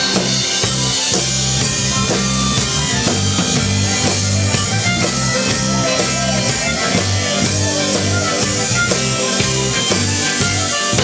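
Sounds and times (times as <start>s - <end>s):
blues-rock band playing: 0.0s - 11.0s
drums steady beat: 0.0s - 11.0s
electric bass guitar line: 0.0s - 11.0s.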